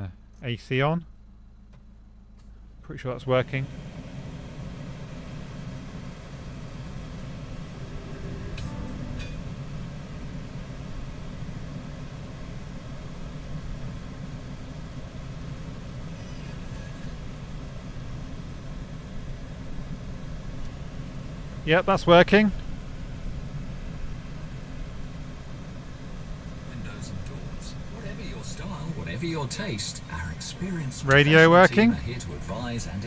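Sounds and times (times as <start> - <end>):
diesel engine idling: 0.0 - 33.0
air-conditioning blower: 3.3 - 21.8, 22.5 - 33.0.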